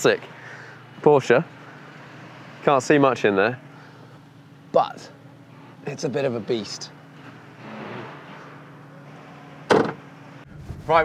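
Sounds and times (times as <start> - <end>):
car panel slamming shut: 9.7 - 10.0.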